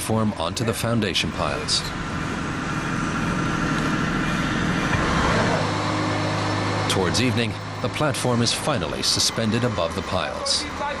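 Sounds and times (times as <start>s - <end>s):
large engine humming: 0.0s - 11.0s.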